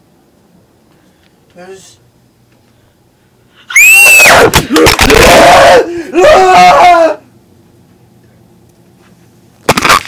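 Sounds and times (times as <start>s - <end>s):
faint low hum: 0.0s - 9.8s
girl screaming: 3.7s - 7.2s.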